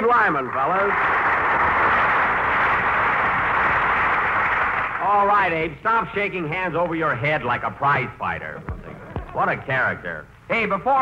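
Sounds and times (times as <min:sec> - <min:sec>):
audience applauding: 0:00.0 - 0:05.3.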